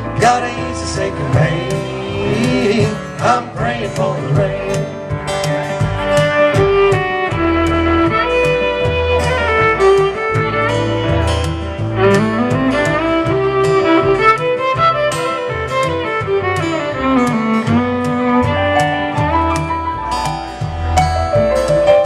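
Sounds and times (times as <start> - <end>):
fiddle melody: 0.0 - 22.0
keyboard: 0.0 - 22.0
strummed acoustic guitar: 0.0 - 22.0
upright bass: 0.0 - 22.0.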